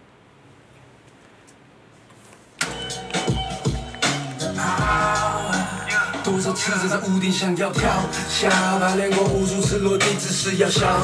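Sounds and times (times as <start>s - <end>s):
faint room hiss: 0.0s - 10.8s
hip-hop beat with deep bass: 2.6s - 11.0s.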